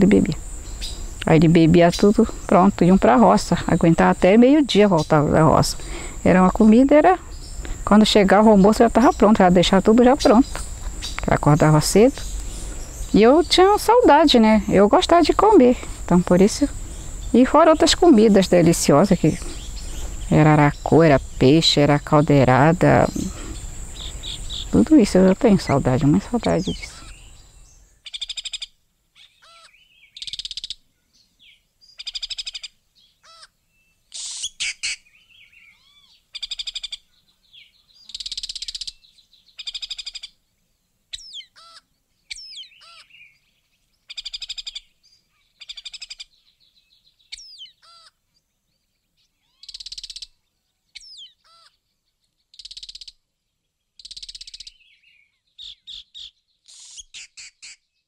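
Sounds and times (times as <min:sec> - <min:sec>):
birds calling: 0:00.0 - 0:58.0.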